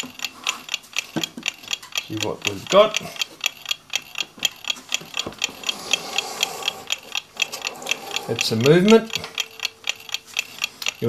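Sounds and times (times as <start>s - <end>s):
mechanical clock ticking: 0.0s - 11.0s.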